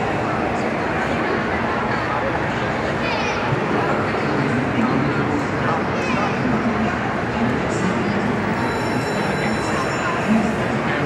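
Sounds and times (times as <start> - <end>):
crowded amusement park din: 0.0 - 11.0
ride machinery metallic squeal: 8.5 - 10.9.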